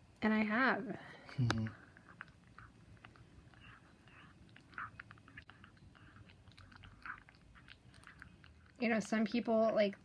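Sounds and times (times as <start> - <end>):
cat chewing and lip-smacking: 1.2 - 10.0.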